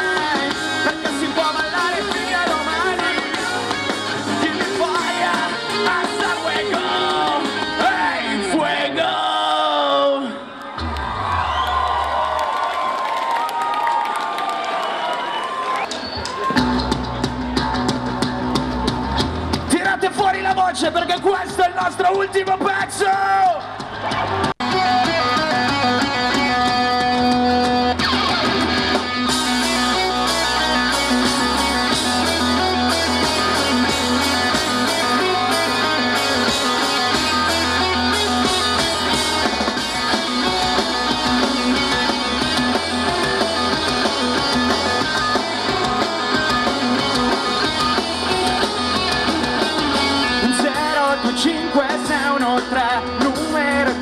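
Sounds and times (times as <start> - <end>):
live rock band playing: 0.0 - 8.8, 15.7 - 54.0
drums: 0.0 - 54.0.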